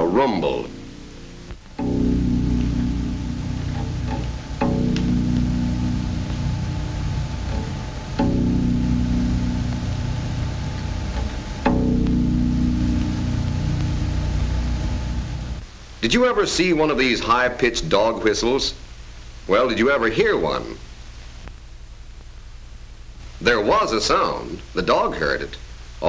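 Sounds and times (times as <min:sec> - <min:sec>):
harp bass strings plucked: 0:00.0 - 0:15.6.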